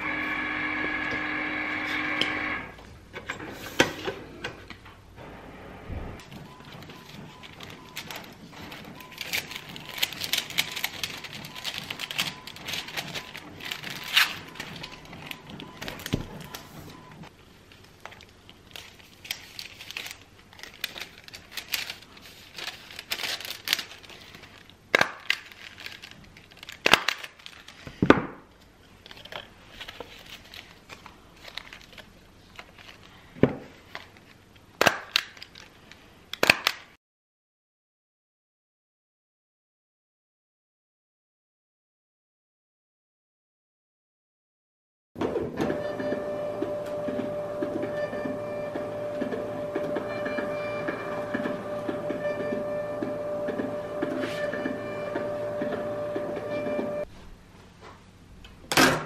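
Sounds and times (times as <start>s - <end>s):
plastic bags crinkling: 6.6s - 16.5s, 17.7s - 28.0s, 28.9s - 36.8s.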